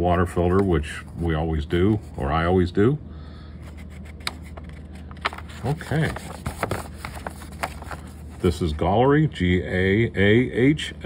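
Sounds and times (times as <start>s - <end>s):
paper rustling: 3.6s - 8.9s.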